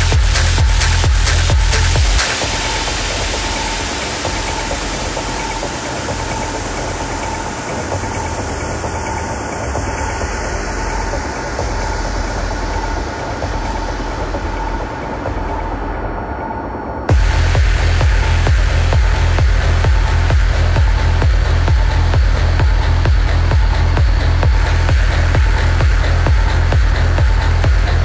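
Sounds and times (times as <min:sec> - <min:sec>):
rumbling noise wash: 0:01.4 - 0:28.0.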